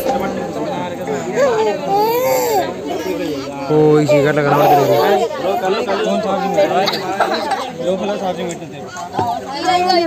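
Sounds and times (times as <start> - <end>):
lively crowd chatter: 0.0 - 10.0.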